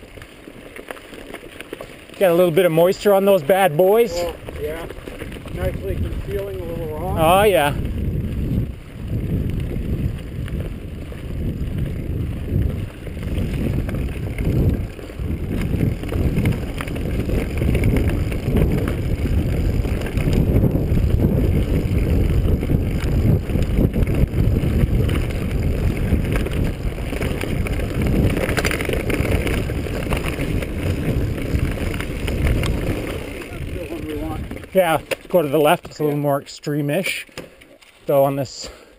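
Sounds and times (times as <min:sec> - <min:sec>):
bike jolts and rattles: 0:00.0 - 0:38.9
wind buffeting microphone: 0:02.2 - 0:35.8
steady rumble: 0:04.0 - 0:35.1.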